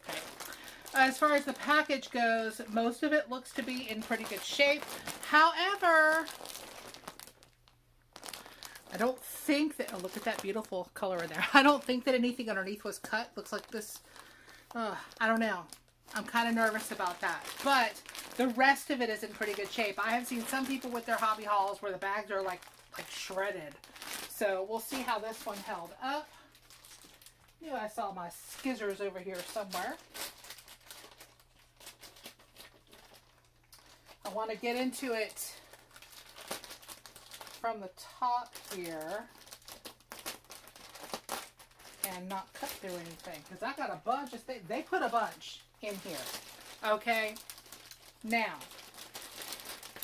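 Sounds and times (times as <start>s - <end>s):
plastic bag crinkling: 0.0s - 50.0s.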